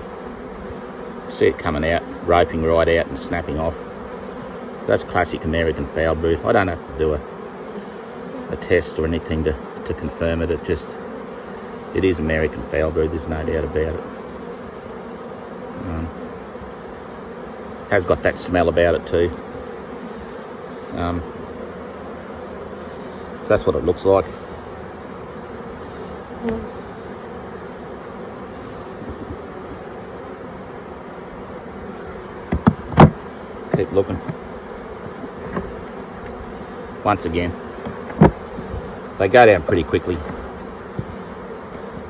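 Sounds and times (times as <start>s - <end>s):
honeybees buzzing: 0.0s - 42.0s.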